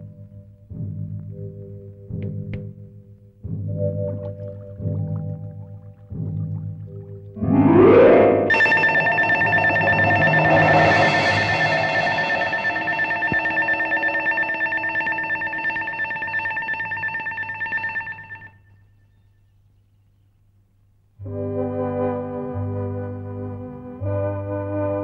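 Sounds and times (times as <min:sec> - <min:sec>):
electronic ringing tone with tremolo: 0:07.4 - 0:18.7.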